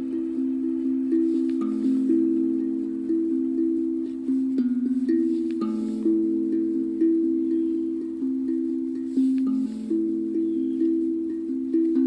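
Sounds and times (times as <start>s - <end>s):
steel tongue drum melody: 0.0s - 12.0s.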